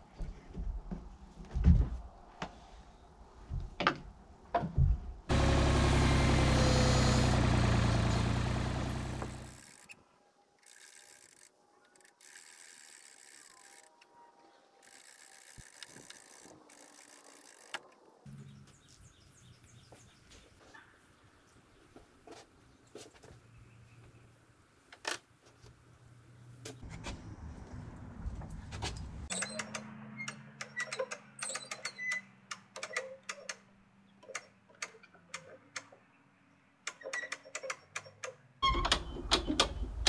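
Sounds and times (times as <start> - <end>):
loud steady motor: 5.3 - 9.6.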